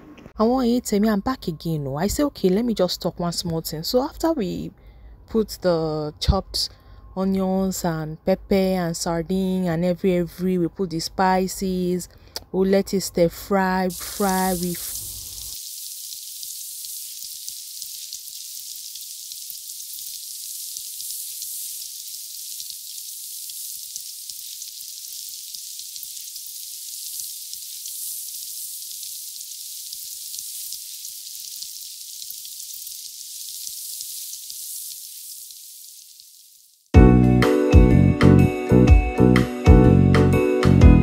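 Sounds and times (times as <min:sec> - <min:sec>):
food sizzling in a frying pan: 0:13.9 - 0:36.9
music: 0:37.0 - 0:41.0.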